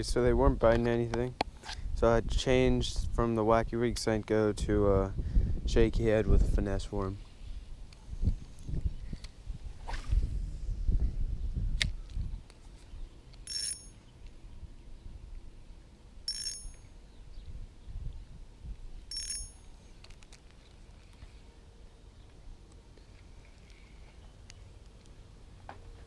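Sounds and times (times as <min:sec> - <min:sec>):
low rumble on microphone: 0:04.6 - 0:13.1
high bell-like rings: 0:16.3 - 0:17.0, 0:19.1 - 0:19.8.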